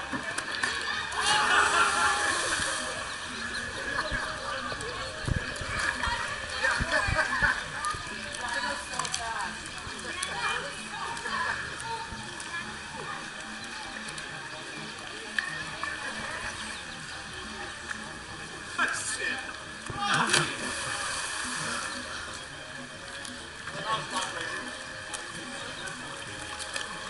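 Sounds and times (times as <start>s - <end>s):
murmur of voices: 0.0s - 27.0s
splashes into swimming pool: 0.6s - 3.0s, 19.9s - 21.8s.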